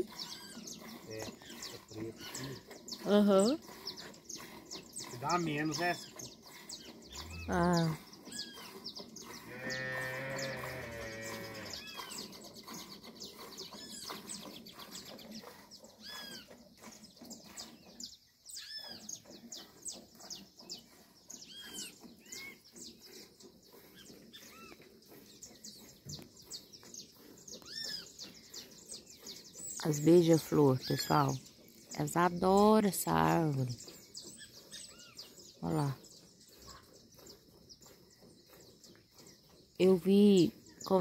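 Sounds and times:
birds chirping: 0.0s - 41.0s
cow mooing: 9.4s - 11.8s.

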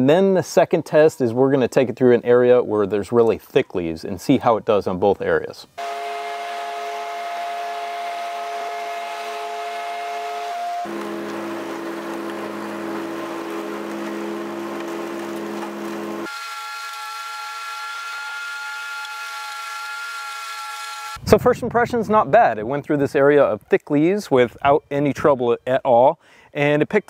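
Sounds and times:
leaf vacuum engine droning: 5.8s - 16.6s.

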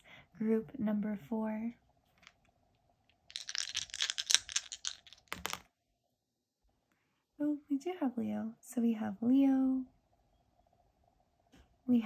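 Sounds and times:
dice clattering on a table: 3.1s - 5.7s.

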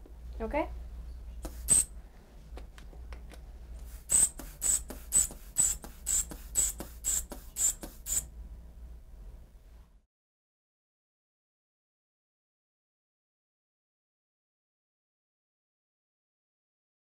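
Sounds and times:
rubber bulb pumping airy puffs: 1.4s - 1.9s, 3.8s - 8.3s.

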